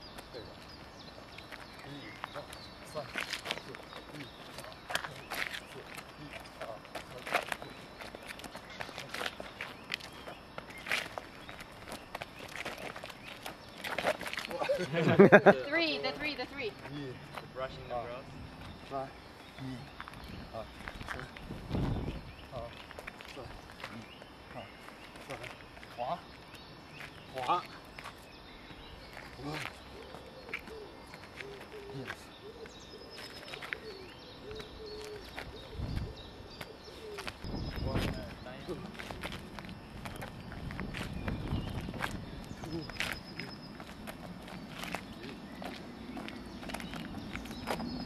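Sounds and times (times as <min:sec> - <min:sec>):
feet scuffing on gritty paving: 0:00.2 - 0:15.0, 0:18.6 - 0:48.0
pigeon cooing: 0:29.9 - 0:37.4.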